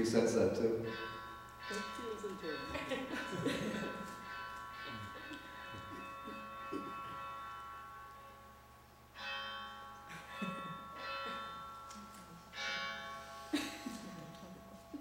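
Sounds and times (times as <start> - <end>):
bell ringing: 0.0 - 15.0.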